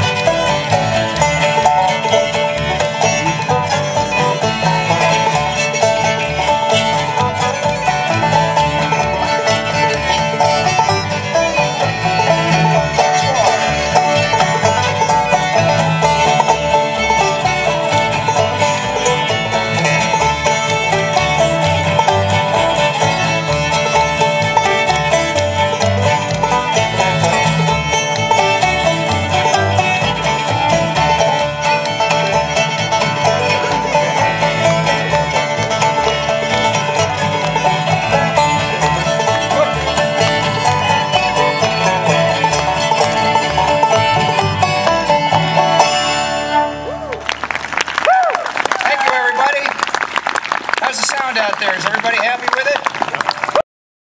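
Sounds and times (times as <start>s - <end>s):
banjo: 0.0s - 53.6s
fiddle: 0.0s - 53.6s
strummed rhythm: 0.0s - 53.6s.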